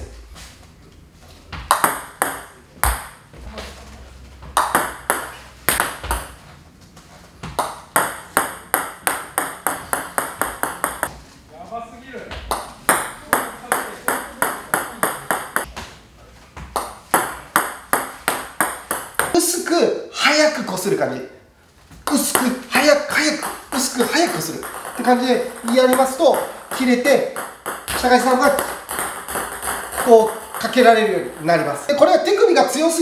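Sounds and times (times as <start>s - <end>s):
ball bouncing on table: 1.6s - 3.3s, 4.4s - 6.4s, 7.4s - 11.1s, 12.3s - 15.9s, 16.6s - 19.4s, 22.0s - 31.6s
ball clicking off racket: 7.6s - 11.1s.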